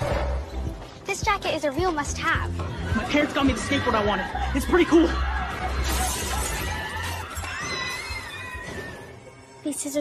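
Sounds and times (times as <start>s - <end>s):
window glass shattering: 5.8s - 8.2s.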